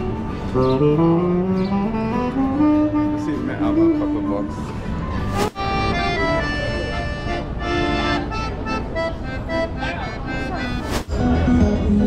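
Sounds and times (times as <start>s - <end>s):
piano accordion playing: 0.0s - 12.0s.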